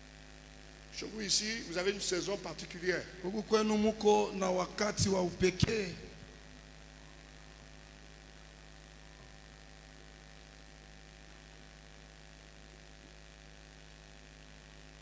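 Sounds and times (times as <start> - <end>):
electrical mains hum: 0.0 - 15.0
sound system hiss: 0.0 - 15.0.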